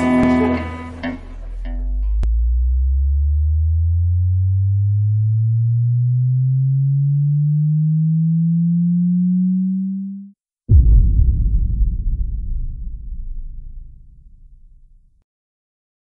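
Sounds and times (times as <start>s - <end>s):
music: 0.0s - 2.6s
rising electronic tone: 0.0s - 14.5s.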